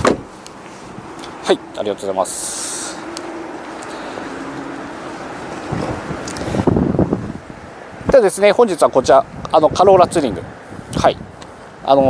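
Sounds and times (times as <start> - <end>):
steady outdoor noise: 0.0 - 12.0
wind buffeting microphone: 0.0 - 12.0.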